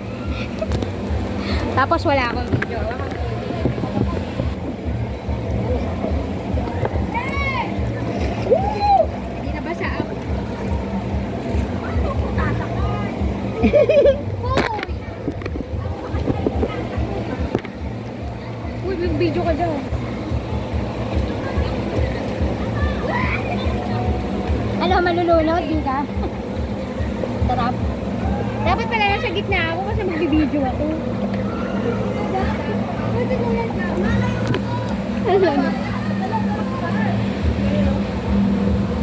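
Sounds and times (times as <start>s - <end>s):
faint voices: 0.0s - 39.0s
low mechanical hum: 0.0s - 39.0s
low rumble: 0.0s - 39.0s
children calling out: 22.7s - 24.2s.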